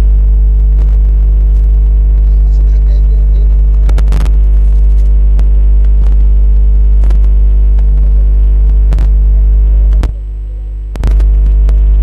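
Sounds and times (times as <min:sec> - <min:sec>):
electrical mains hum: 0:00.0 - 0:12.0
clicks and crackles: 0:00.5 - 0:10.2, 0:10.8 - 0:12.0.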